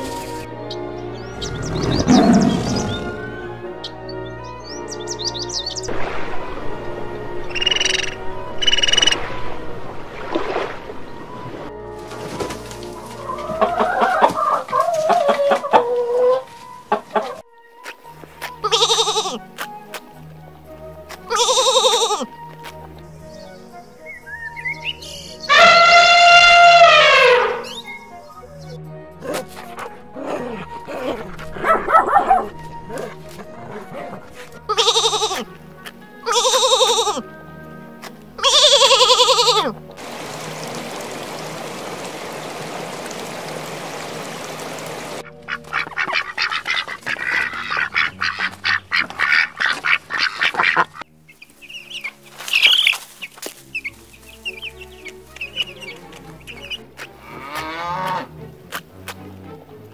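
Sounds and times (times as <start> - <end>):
background music: 0.0 - 59.9
elephant trumpeting: 1.4 - 3.6, 25.4 - 27.9, 29.2 - 35.5, 36.2 - 37.2, 38.4 - 39.7
short honking calls: 25.4 - 27.8
steady hiss: 40.0 - 45.2.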